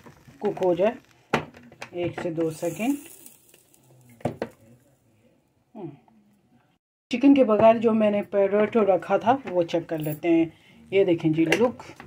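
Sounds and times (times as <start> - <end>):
food sizzling: 0.0 - 5.1.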